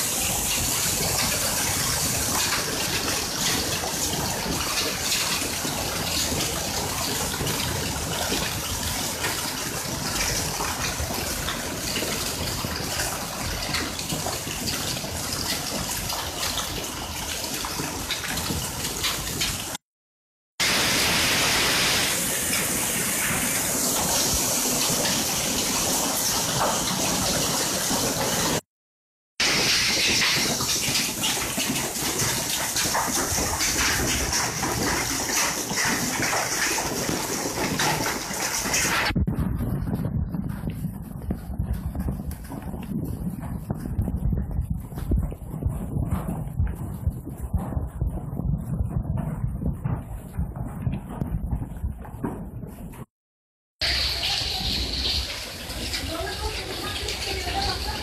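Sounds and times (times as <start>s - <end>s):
heavy rain pouring: 0.0s - 19.8s, 20.6s - 28.6s, 29.4s - 51.6s, 53.8s - 58.0s
runoff water rushing: 0.0s - 19.8s, 20.6s - 28.6s, 29.4s - 46.0s, 53.8s - 58.0s.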